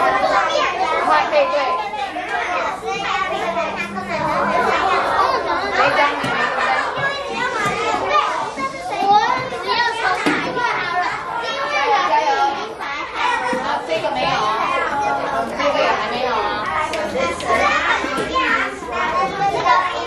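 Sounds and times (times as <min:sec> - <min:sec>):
children chattering and calling out: 0:00.0 - 0:20.0.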